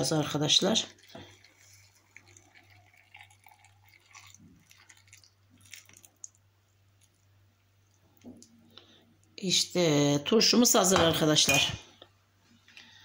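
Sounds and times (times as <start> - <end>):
low steady hum: 0.0 - 13.0
water pouring into jar: 0.2 - 6.4.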